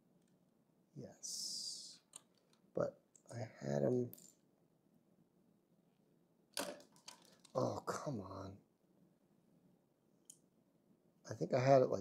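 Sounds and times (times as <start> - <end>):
plastic bricks clicking: 6.6 - 7.6.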